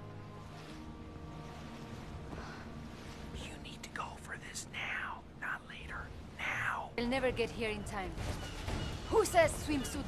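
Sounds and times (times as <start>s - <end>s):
man whispering: 3.4s - 6.9s.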